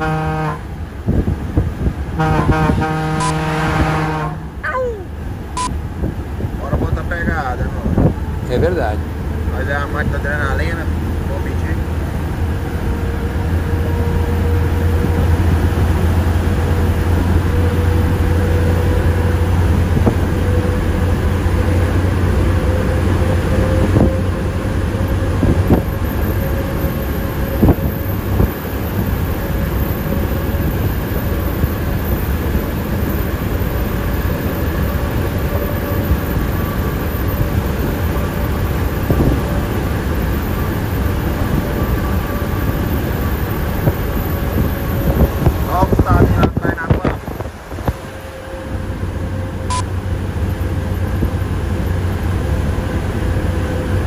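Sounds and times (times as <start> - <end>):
truck diesel engine droning: 0.0 - 54.0.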